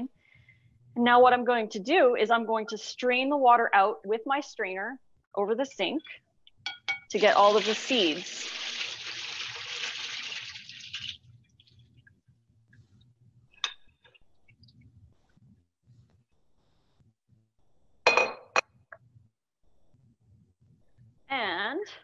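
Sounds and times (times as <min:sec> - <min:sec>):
water pouring through a strainer: 0:07.2 - 0:11.3.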